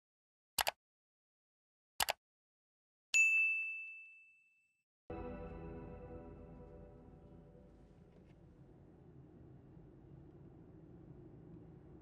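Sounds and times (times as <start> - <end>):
notification bell ding: 3.2 - 6.8.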